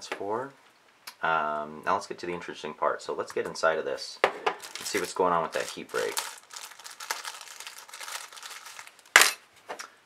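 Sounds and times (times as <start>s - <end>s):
plastic bag crinkling: 4.6s - 9.3s.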